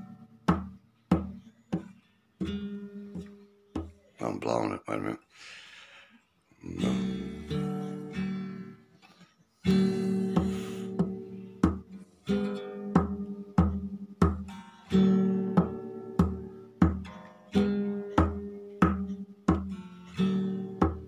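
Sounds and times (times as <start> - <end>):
acoustic guitar strumming: 0.0 - 4.8, 6.6 - 21.0.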